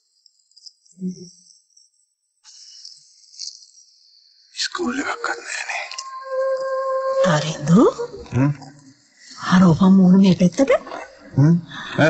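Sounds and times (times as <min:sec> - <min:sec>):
steady electronic tone: 0:05.1 - 0:08.9.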